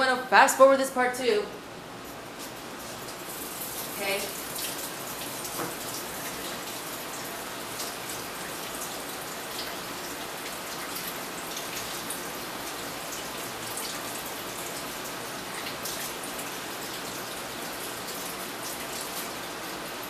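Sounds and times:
tap water running into sink: 2.8 - 19.8.

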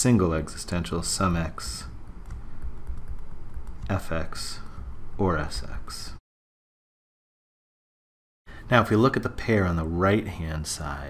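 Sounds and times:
low steady hum: 0.0 - 6.2
stylus tapping and scraping on screen: 1.2 - 5.0.

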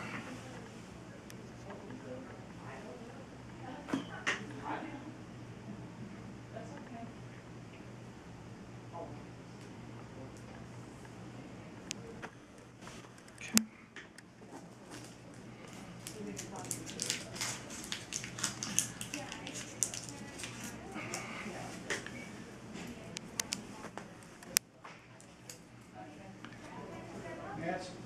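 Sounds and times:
adhesive tape rustling and crinkling: 14.9 - 21.3.

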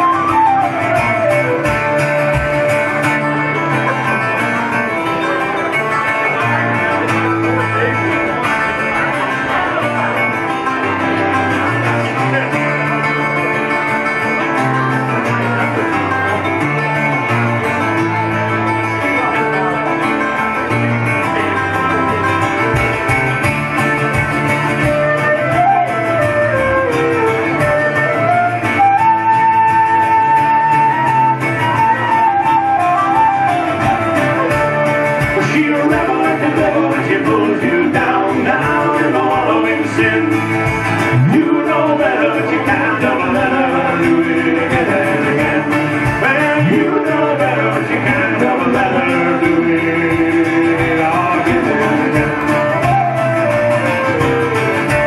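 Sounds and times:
flute melody: 0.0 - 20.8, 21.4 - 55.0
fiddle melody: 0.0 - 36.2
mandolin: 0.0 - 55.0
strummed acoustic guitar: 0.0 - 55.0.

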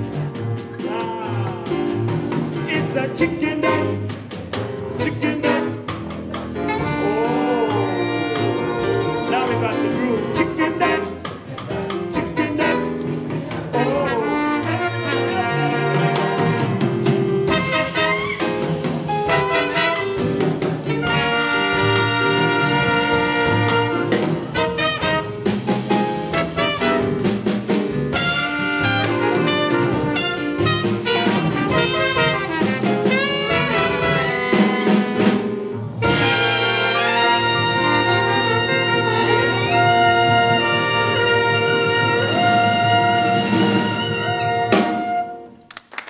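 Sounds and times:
drums with cymbal strikes: 0.0 - 13.9, 14.7 - 45.2
double bass: 0.0 - 45.6
jazz horns playing: 1.7 - 45.7.

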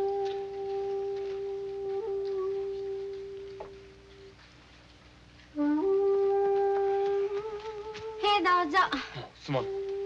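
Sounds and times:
bamboo flute long note: 0.0 - 4.3, 5.6 - 8.8, 9.4 - 10.0.

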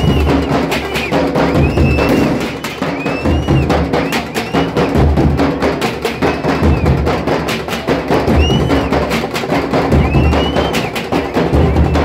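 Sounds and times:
piercing finger whistle: 0.0 - 5.0, 8.3 - 9.1, 9.9 - 11.0
drum troupe beating drums: 0.0 - 12.0.

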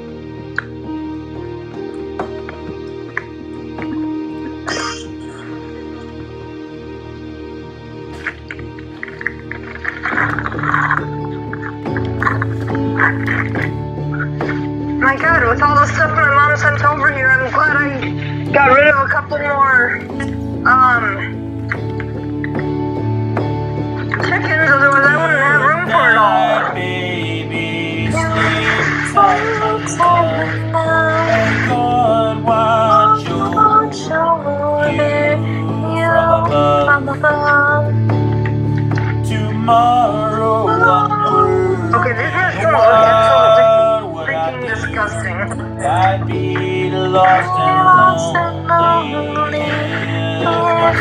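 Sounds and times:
electronic keyboard chords: 0.0 - 51.0
wavering voice-like melody: 24.4 - 37.8, 39.3 - 51.0
person singing wordlessly: 24.4 - 38.0, 39.2 - 51.0.

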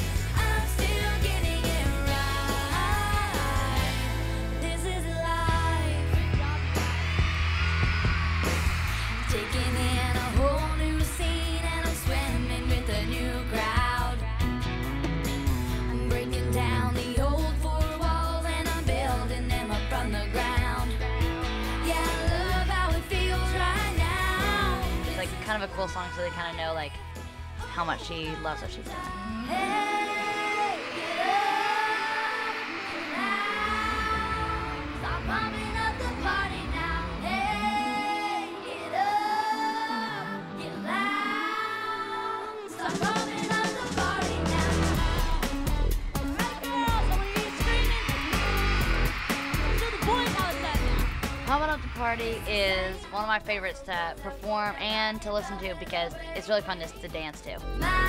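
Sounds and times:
heavy bass line: 0.0 - 25.6, 28.7 - 38.0, 44.2 - 54.5
live pop-rock band: 0.0 - 25.8, 28.8 - 51.6
steady drum beat: 5.5 - 26.0, 42.9 - 56.0.

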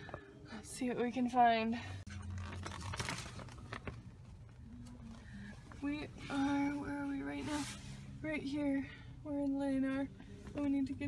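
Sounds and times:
paper crinkles: 2.1 - 5.2
paper map rustling: 2.1 - 8.0.

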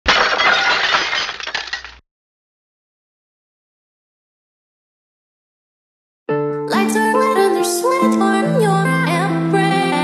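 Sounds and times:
glass breaking crash: 0.0 - 2.0.

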